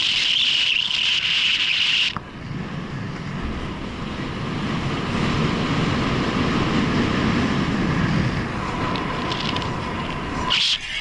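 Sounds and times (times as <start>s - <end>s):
car tyre and wind noise: 0.0s - 11.0s.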